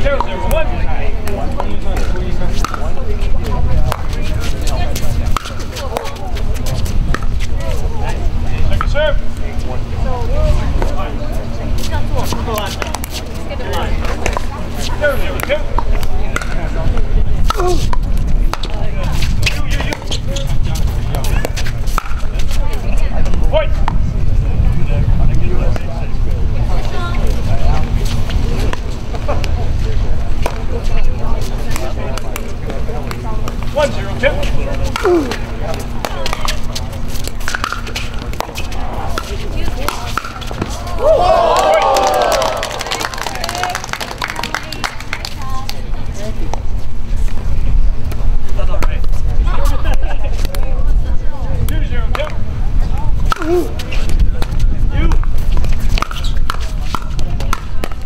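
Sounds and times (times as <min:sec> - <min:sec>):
people talking: 0:00.0 - 0:47.8, 0:48.4 - 0:58.0
steady low rumble: 0:00.0 - 0:58.0.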